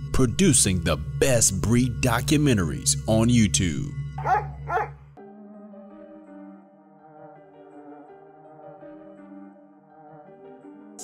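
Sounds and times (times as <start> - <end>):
music bed: 0.0 - 11.0
soft ambient music: 0.0 - 11.0
dog barks: 4.2 - 5.0.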